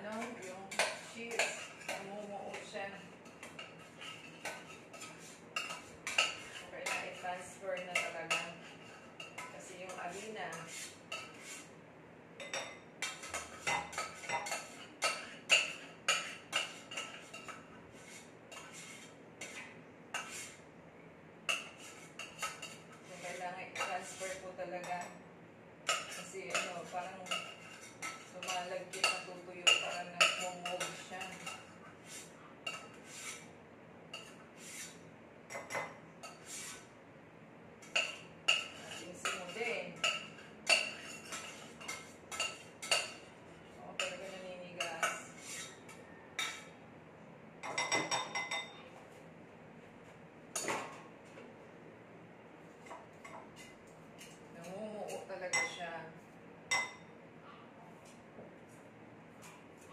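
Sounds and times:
metal utensil scraping saucepan: 0.0s - 11.7s, 12.4s - 20.6s, 25.9s - 33.5s, 34.1s - 36.9s, 37.8s - 43.3s, 43.9s - 46.7s.

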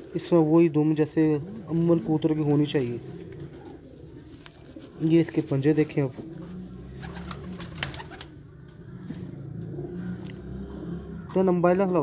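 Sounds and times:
pigeons cooing: 1.1s - 11.4s.

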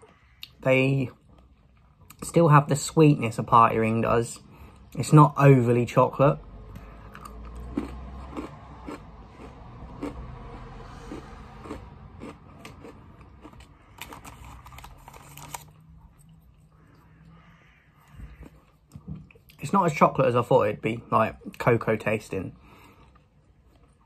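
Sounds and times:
soft chewing: 6.7s - 19.6s, 22.6s - 24.0s
biscuit crunching: 7.2s - 16.7s.

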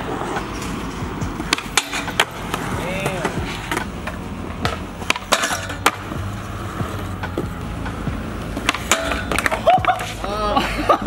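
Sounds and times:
skateboard clacking on ground: 0.0s - 10.6s
skateboard wheels rolling on concrete: 0.0s - 11.0s.

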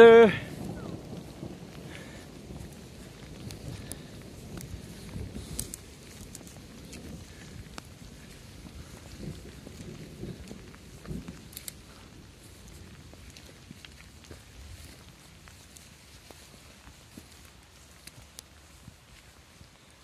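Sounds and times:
footsteps through grass and brush: 0.0s - 20.0s
small ticks: 1.1s - 19.7s.

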